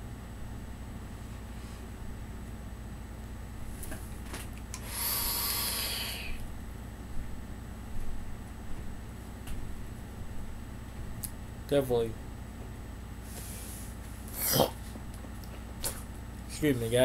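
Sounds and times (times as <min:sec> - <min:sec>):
low fan hum: 0:00.0 - 0:17.0
breathy vape hiss: 0:04.8 - 0:06.4.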